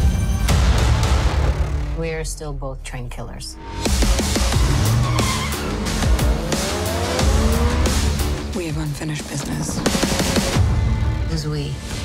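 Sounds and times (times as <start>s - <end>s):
action trailer music: 0.0s - 12.0s
tyres squealing: 4.8s - 6.1s
engine rising in pitch: 5.0s - 8.2s.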